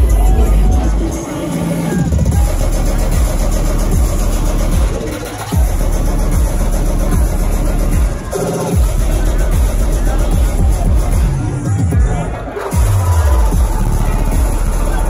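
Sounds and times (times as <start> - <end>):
loud electronic dance music: 0.0 - 15.0.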